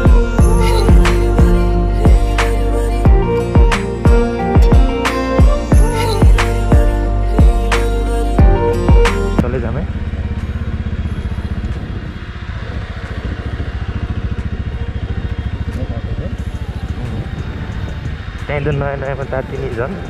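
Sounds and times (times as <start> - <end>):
background music: 0.0 - 12.3, 13.1 - 20.0
motorcycle engine running: 0.0 - 20.0.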